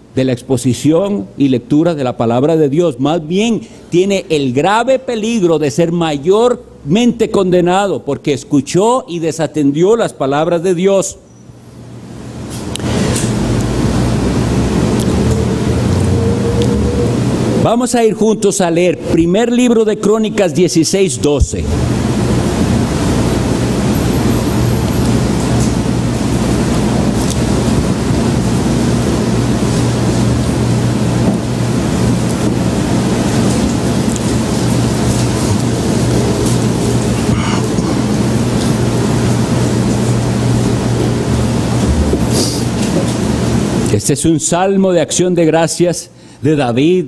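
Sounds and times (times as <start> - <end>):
loud steady rumbling: 11.9 - 44.2
low hum: 13.2 - 17.7, 21.5 - 43.8.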